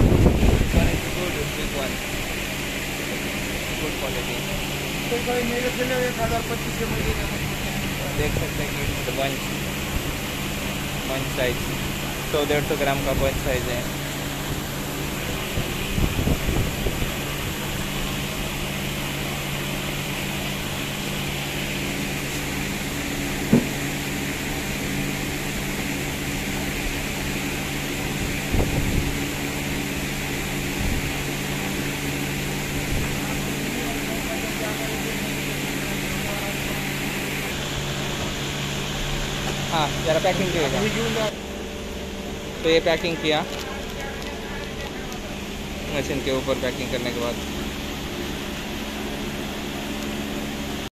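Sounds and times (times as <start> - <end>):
fan-like machine humming: 0.0 - 50.9.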